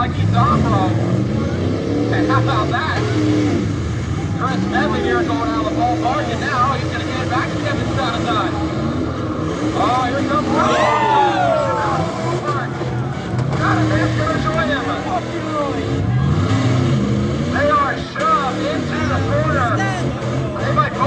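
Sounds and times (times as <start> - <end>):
announcer voice over loudspeaker: 0.0 - 1.1, 4.4 - 8.6, 13.6 - 16.5, 17.5 - 21.0
car engines revving: 0.0 - 21.0.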